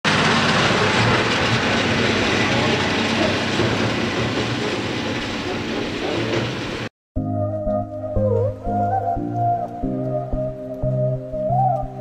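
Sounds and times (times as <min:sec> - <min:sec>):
tractor engine running: 0:00.0 - 0:06.9
trailer body rattling: 0:00.1 - 0:06.9.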